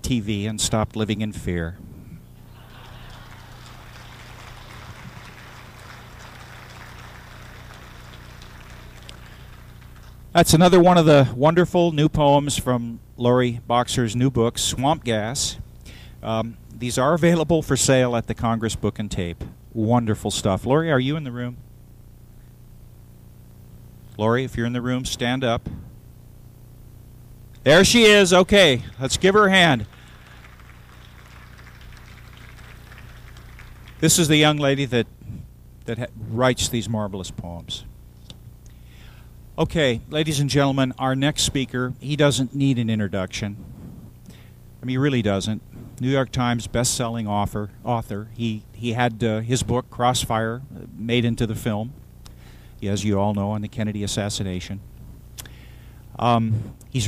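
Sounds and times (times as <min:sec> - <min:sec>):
low steady hum: 0:00.0 - 0:57.0
audience applause: 0:02.5 - 0:10.2, 0:28.0 - 0:34.8.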